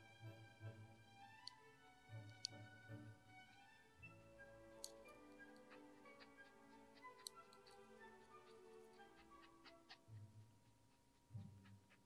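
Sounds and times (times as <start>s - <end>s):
soft background music: 0.0s - 12.0s
rabbit chewing greens: 4.7s - 12.0s.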